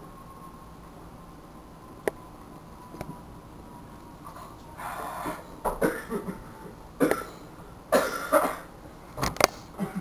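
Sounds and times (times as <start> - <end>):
person coughing: 5.7 - 8.7, 9.8 - 10.0.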